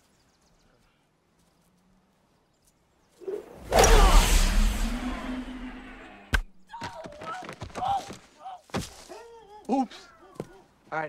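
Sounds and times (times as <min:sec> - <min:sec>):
whoosh with deep rumble: 0:03.3 - 0:06.5.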